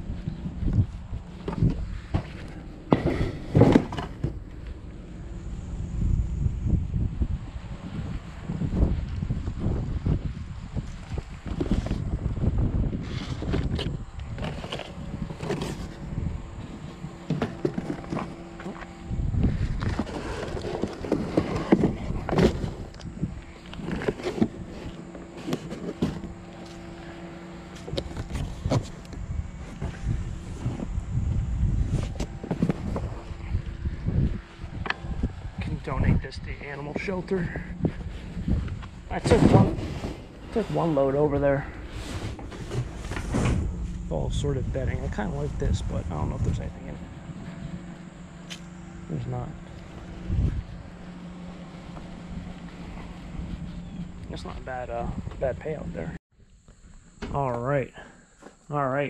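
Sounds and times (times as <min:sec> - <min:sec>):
faint steady hum: 0:00.0 - 0:59.0
items knocking and clunking: 0:01.4 - 0:04.5.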